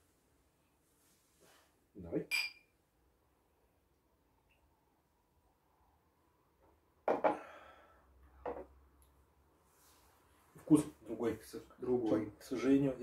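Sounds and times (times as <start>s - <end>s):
glasses set down on table: 7.1s - 7.5s, 8.4s - 8.7s.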